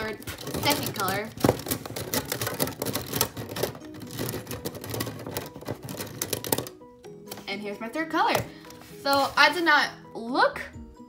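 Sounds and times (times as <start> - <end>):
plastic pens clicking and rattling: 0.0 - 7.5.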